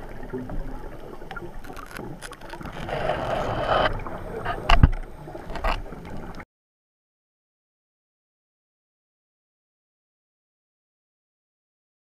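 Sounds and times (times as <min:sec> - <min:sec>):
underwater bubbles rushing: 0:00.0 - 0:06.4.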